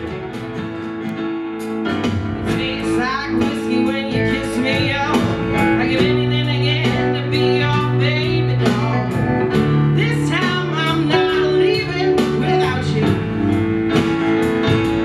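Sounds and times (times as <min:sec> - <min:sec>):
live rock band playing: 0:00.0 - 0:15.0
steady drum hits: 0:00.0 - 0:15.0.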